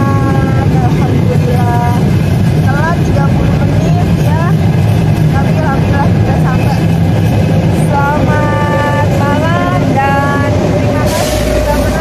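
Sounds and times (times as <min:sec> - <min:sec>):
woman talking: 0:00.0 - 0:04.6, 0:05.3 - 0:07.1, 0:07.7 - 0:12.0
low rumble and hum: 0:00.0 - 0:12.0.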